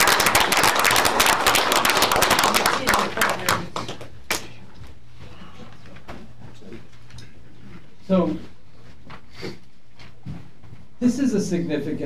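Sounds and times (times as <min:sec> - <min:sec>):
people clapping: 0:00.0 - 0:04.6.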